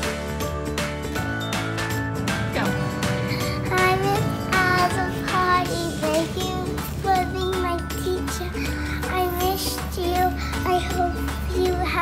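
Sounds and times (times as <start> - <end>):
backing music: 0.0 - 12.0
girl singing: 3.3 - 12.0.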